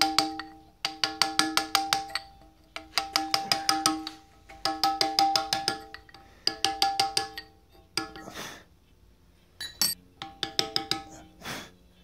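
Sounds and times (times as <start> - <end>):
mallet tapping steel chisel on stone: 0.0 - 8.3, 9.6 - 11.3.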